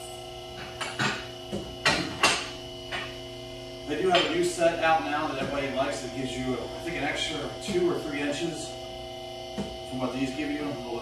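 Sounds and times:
electric hydraulic pump humming: 0.0 - 11.0.

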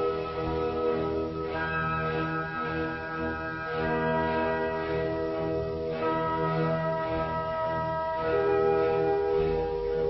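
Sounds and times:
sustained organ-like chords: 0.0 - 10.0.

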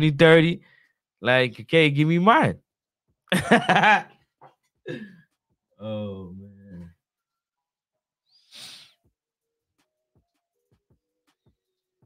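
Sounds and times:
man exhaling into microphone: 8.5 - 9.0.

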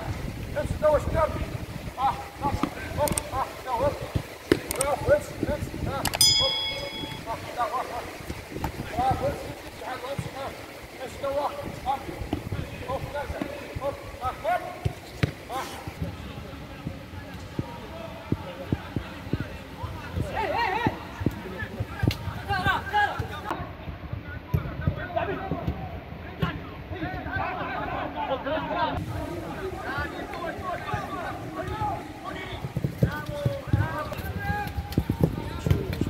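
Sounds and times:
ball kicks and feet thudding: 14.8 - 16.1
players shouting: 26.6 - 35.7.

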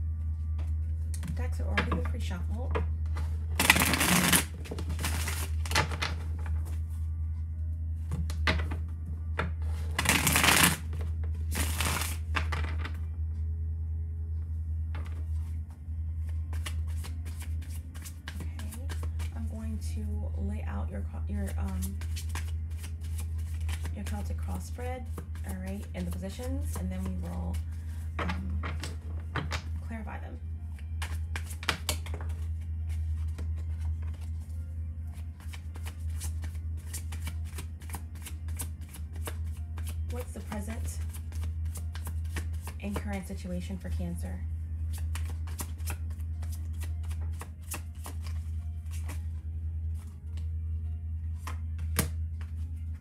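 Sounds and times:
low hum: 0.0 - 53.0
cards being shuffled: 3.1 - 7.0, 9.4 - 13.0, 15.0 - 19.6, 21.4 - 29.8, 30.7 - 43.9, 44.8 - 50.6, 51.3 - 53.0.

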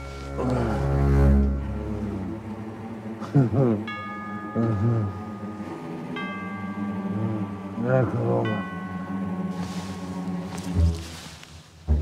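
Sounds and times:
low sustained drone: 0.0 - 12.0
bell-like chime ringing: 3.9 - 10.8.

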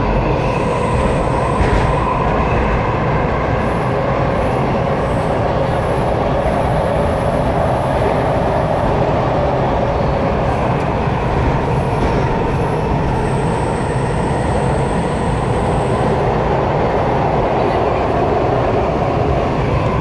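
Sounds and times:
subway train wheels rumbling on rails: 0.0 - 20.0.

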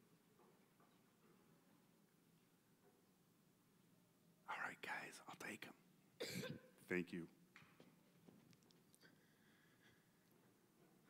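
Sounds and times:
faint whispered speech: 4.5 - 5.8.

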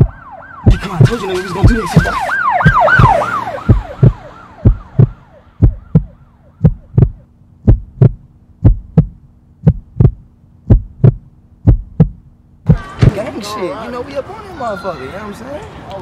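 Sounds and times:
siren wailing: 0.0 - 7.2
heartbeat thumps: 0.0 - 13.2
low steady hum: 2.6 - 13.2.

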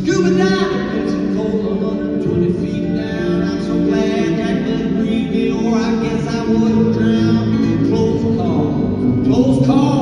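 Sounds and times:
man singing: 0.0 - 10.0
strummed acoustic guitar: 0.0 - 10.0.

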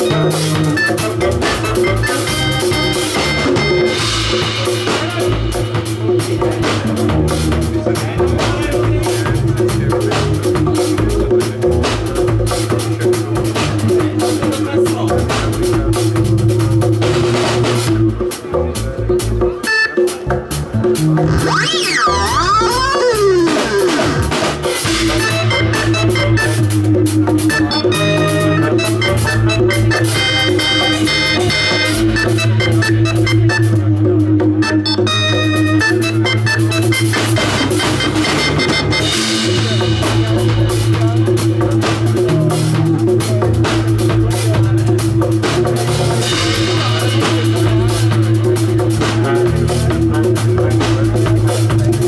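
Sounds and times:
organ chords: 0.0 - 11.3, 19.6 - 50.4
electric bass line: 0.0 - 18.3, 20.2 - 52.0
drum kit: 0.0 - 52.0
reggae band playing: 0.0 - 52.0
pitch sweeping up and down: 21.2 - 24.4.

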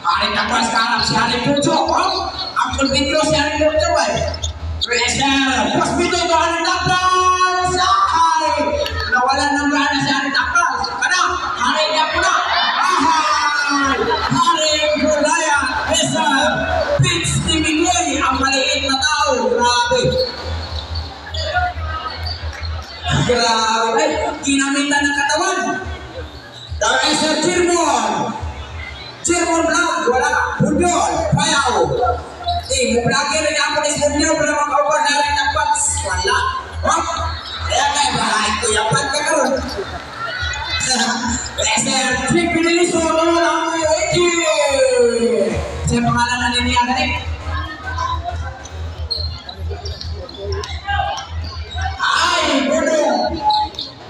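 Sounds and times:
crowd murmur: 0.0 - 54.0
faint voices: 0.0 - 54.0.

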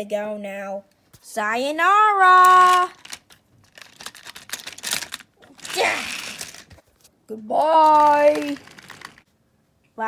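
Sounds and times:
plastic toy trains clicking and rattling: 7.6 - 9.2.

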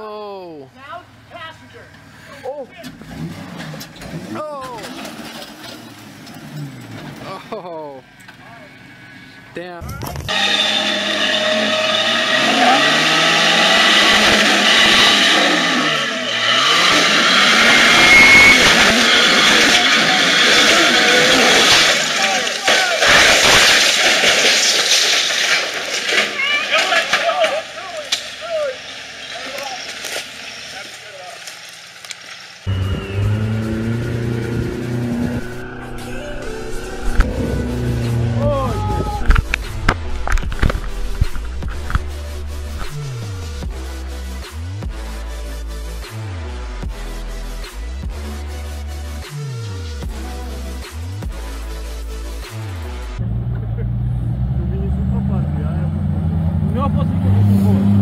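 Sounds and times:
suv engine revving: 2.9 - 7.3, 10.2 - 22.5, 32.7 - 44.9, 52.5 - 58.0
people's voices: 18.0 - 23.3, 26.2 - 31.6, 35.5 - 43.6
low rumbling wind: 34.6 - 43.6.

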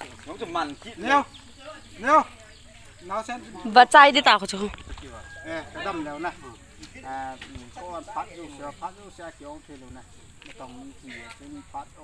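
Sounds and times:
man talking: 4.8 - 12.0.

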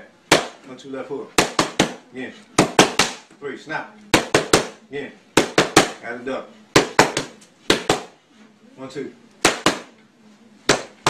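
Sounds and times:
boxing gloves smacking mitts: 1.4 - 2.0, 2.6 - 3.3, 5.4 - 6.0, 6.8 - 8.2, 9.4 - 10.0, 10.7 - 11.0.

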